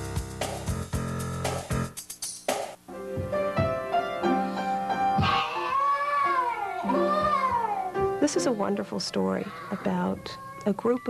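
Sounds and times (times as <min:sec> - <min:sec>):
held piano notes: 0:02.9 - 0:05.6, 0:06.2 - 0:09.5
child wailing: 0:05.2 - 0:08.8, 0:09.4 - 0:11.0.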